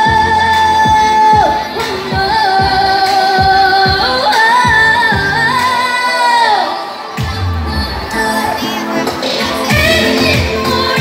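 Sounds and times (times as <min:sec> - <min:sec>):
pop backing track with kick drum: 0:00.0 - 0:05.9, 0:07.2 - 0:11.0.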